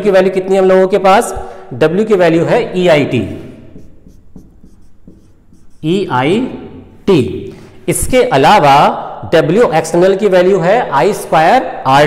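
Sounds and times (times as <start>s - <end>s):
marker pen writing on whiteboard: 2.5s - 6.8s.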